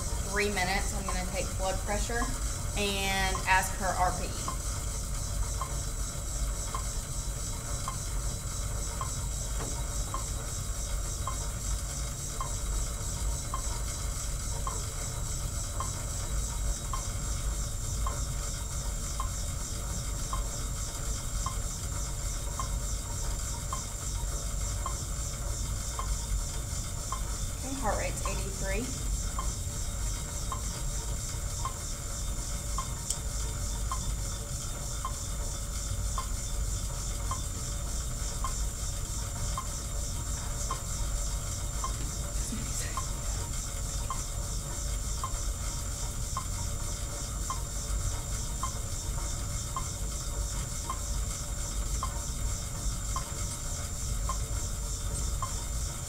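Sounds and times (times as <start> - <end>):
flywheel whirring hiss: 0.0 - 56.0.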